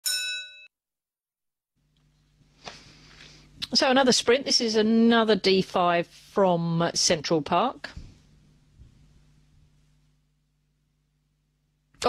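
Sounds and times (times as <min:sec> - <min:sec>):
bell-like ding: 0:00.0 - 0:00.7.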